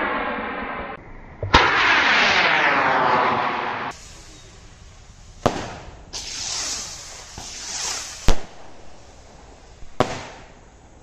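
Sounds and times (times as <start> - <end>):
rocket launching hiss: 0.0 - 11.0
sharp firework crack: 0.0 - 11.0.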